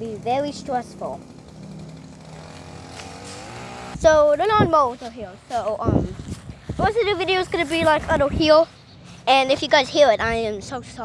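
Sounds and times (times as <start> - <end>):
lawnmower engine running: 0.0 - 6.2.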